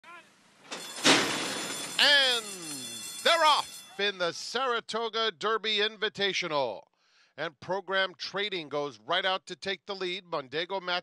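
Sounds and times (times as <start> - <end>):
starting gate clanging open: 0.7 - 2.4
starting bell ringing: 0.7 - 4.1.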